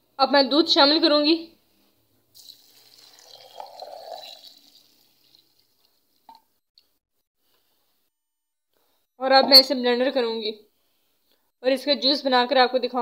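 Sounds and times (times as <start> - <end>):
milk pouring into blender jar: 2.4 - 6.0.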